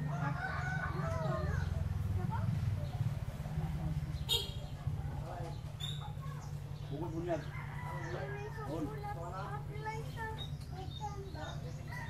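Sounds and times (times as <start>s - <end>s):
rooster crowing: 0.0s - 1.7s, 7.4s - 8.7s.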